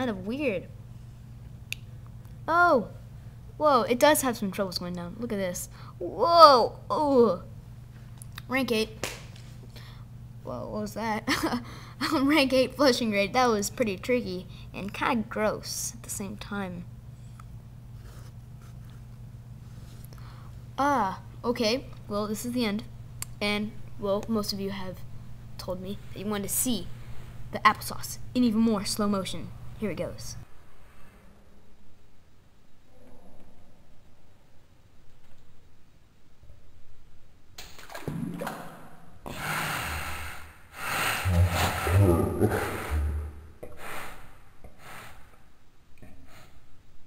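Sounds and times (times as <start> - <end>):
steady low hum: 0.0 - 47.0
breathing: 5.7 - 6.0, 9.7 - 10.1, 11.6 - 12.0, 14.5 - 14.8, 19.6 - 20.7, 26.9 - 27.5, 30.7 - 31.5, 43.8 - 45.4, 46.0 - 46.7
slowed-down laughing: 41.2 - 43.4.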